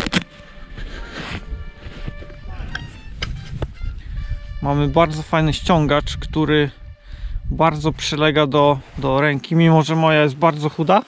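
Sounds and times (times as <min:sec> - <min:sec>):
glove clicks: 0:00.0 - 0:00.5
glove rustling: 0:00.0 - 0:03.6
faint background music: 0:00.0 - 0:11.0
wind rumble on microphone: 0:00.7 - 0:09.4.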